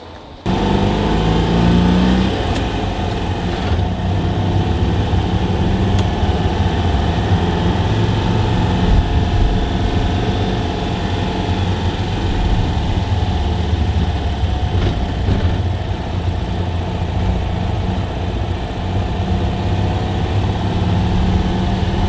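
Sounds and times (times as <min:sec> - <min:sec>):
car engine running at low speed: 0:00.4 - 0:22.0.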